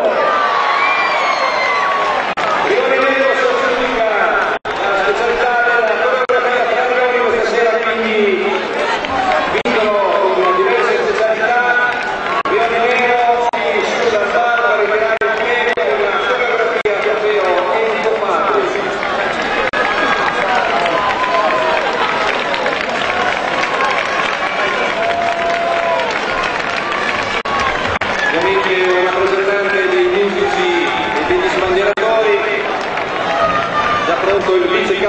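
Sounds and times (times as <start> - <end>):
people talking over each other: 2.3 - 35.0
man speaking over public address: 2.5 - 21.6, 28.2 - 32.8, 34.0 - 35.0.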